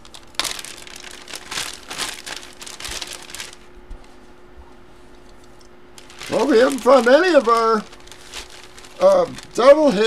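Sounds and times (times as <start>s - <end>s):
plastic bag crinkling: 0.0s - 3.7s, 6.0s - 10.0s.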